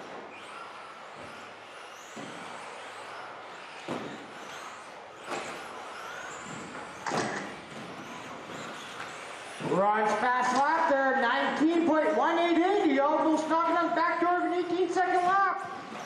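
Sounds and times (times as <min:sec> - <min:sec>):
electric motors whining: 0:00.0 - 0:16.0.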